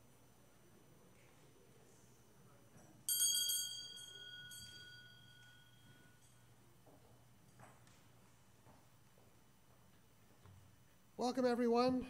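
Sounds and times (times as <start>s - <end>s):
small bell ringing: 3.1s - 6.6s.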